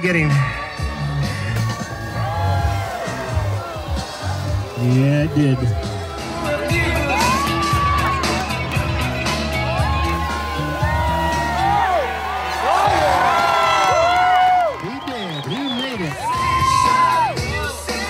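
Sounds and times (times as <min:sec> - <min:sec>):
music with steady bass line: 0:00.0 - 0:14.7, 0:16.0 - 0:18.0
crowd cheering and whooping: 0:01.0 - 0:18.0.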